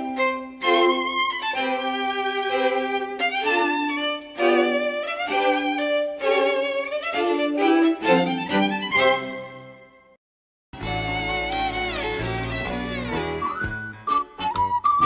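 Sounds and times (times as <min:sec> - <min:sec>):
violin melody with vibrato: 0:00.0 - 0:10.2, 0:10.8 - 0:13.7.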